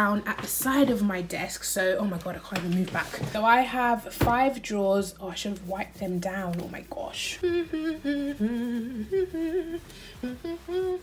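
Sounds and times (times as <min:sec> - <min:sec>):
woman humming a tune: 0:07.4 - 0:11.0.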